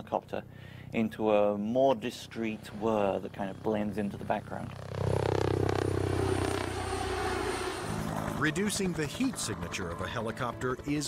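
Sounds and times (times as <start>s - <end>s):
faint high whine: 1.6s - 10.0s
helicopter rotor whirr: 1.6s - 11.0s.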